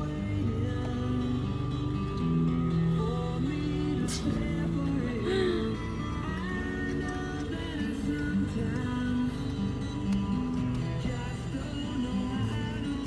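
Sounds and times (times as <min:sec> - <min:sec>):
guitar music on car radio: 0:00.0 - 0:13.0.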